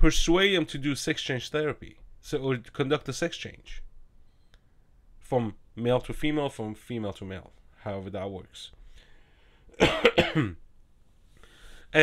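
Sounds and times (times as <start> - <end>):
man coughing: 9.8 - 10.6.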